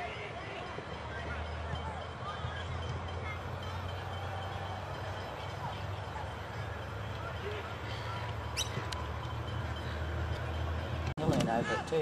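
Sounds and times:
distant shouts and voices: 0.0s - 12.0s.

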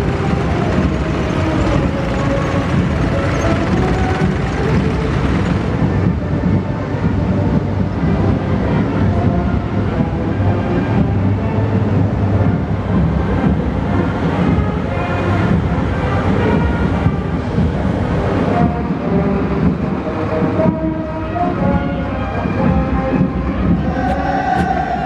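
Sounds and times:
engine and road rumble: 0.0s - 25.0s
heavy military vehicles driving past: 0.0s - 25.0s.

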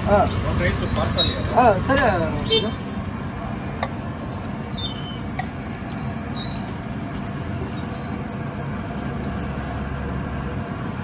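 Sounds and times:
noisy background din: 0.0s - 11.0s
short high squeaks: 0.3s - 1.7s, 2.6s - 3.4s, 4.5s - 6.8s.

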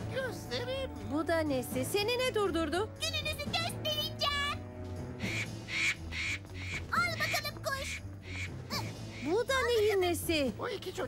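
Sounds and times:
cartoon music with pulsing beat: 5.2s - 9.8s.

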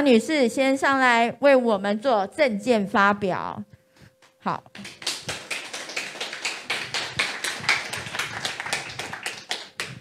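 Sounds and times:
audience clapping: 4.8s - 10.0s.

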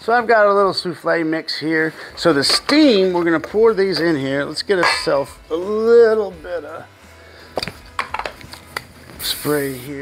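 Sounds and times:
can knocking and clinking: 4.8s - 5.2s, 7.6s - 8.9s.

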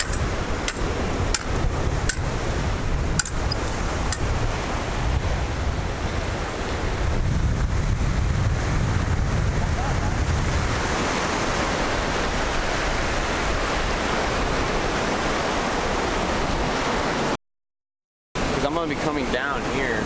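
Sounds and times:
wind buffeting microphone: 0.0s - 17.2s
surf washing onto beach: 0.0s - 17.4s, 18.4s - 20.0s.

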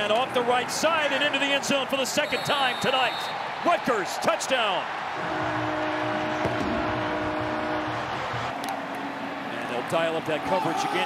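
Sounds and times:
stadium crowd ambience: 0.0s - 11.0s.

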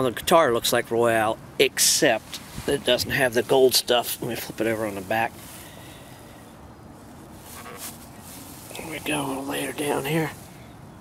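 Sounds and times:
low outdoor rumble: 0.0s - 11.0s
soft rustle: 2.1s - 10.7s.

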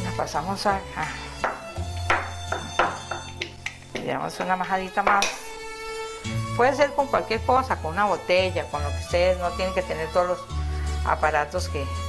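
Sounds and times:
instrumental music: 0.0s - 12.0s.

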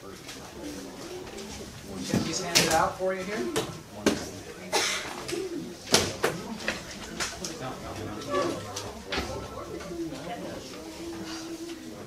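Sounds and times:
students talking quietly: 0.0s - 12.0s.

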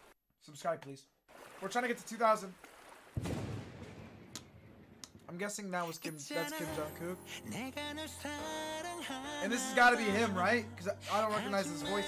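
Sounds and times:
low thud with rumble: 3.2s - 5.2s.

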